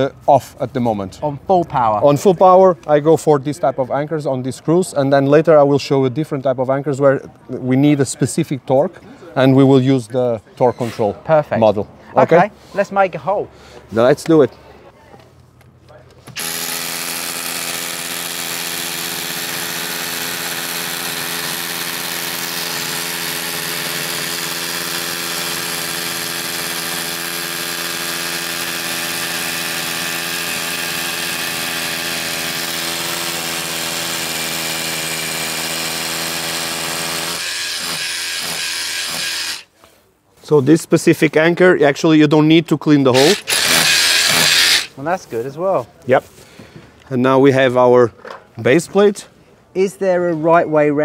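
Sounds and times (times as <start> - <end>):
rotary hammer drilling concrete: 16.3 - 39.7, 43.1 - 44.9.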